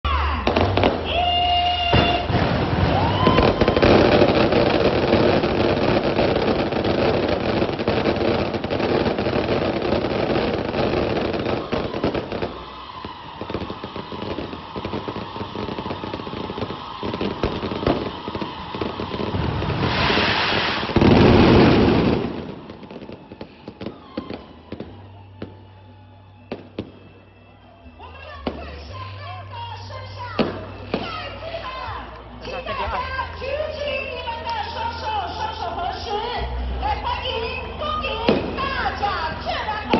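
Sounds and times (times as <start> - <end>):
fireworks crackling and popping: 0.4 - 27.3, 29.9 - 36.1, 37.3 - 39.9
loud rushing burst: 13.3 - 23.4.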